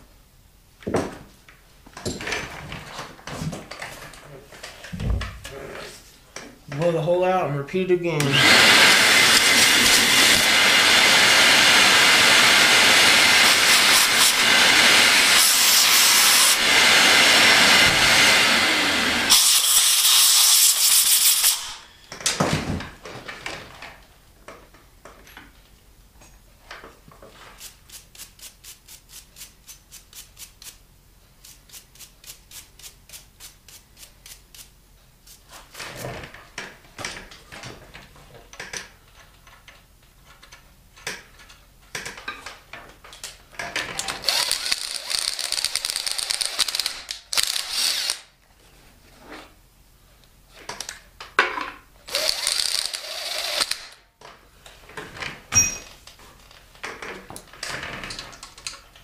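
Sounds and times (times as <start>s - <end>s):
hand ratchet clicking: 44.0s - 48.3s, 52.1s - 54.0s.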